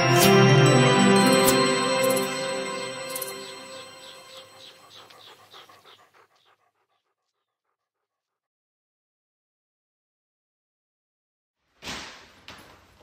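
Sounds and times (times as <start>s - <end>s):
logo jingle: 0.0s - 4.8s
dog panting: 4.0s - 8.4s.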